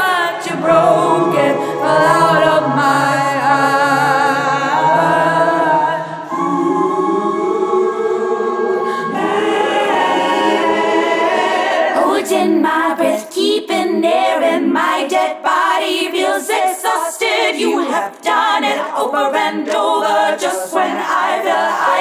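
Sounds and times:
choir-like vocal harmonies: 0.0 - 22.0.

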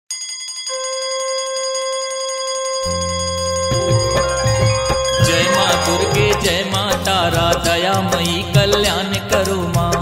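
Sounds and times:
bell-like ringing chime: 0.1 - 6.8
low drone: 3.7 - 7.3
drum strokes: 3.7 - 8.3.

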